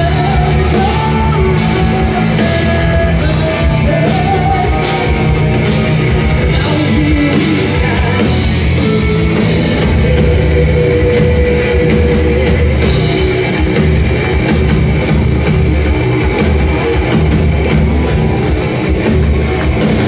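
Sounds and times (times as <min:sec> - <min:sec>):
bass guitar: 0:00.0 - 0:20.0
distorted electric guitars: 0:00.0 - 0:20.0
drum kit: 0:00.0 - 0:20.0.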